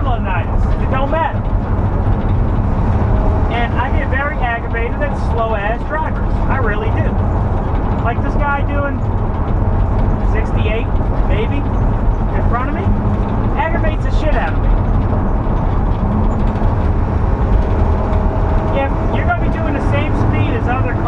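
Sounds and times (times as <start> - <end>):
road and engine noise in cab: 0.0 - 21.0.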